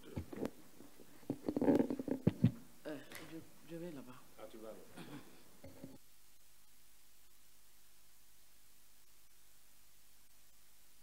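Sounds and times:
microphone handling knocks: 1.3 - 2.6.

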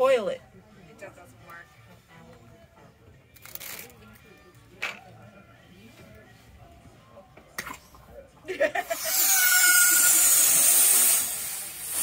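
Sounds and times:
helium hissing into balloon: 9.0 - 12.0.

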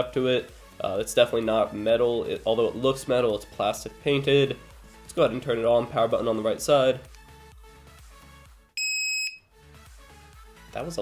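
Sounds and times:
high electronic beep: 8.8 - 9.5.

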